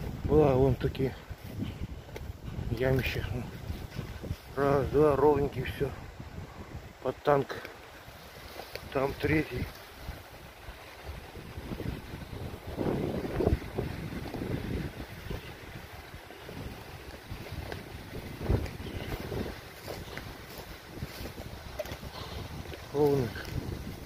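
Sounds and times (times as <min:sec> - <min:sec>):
footsteps rustling through shrubs: 0:00.0 - 0:24.0
wind on microphone: 0:00.0 - 0:24.0.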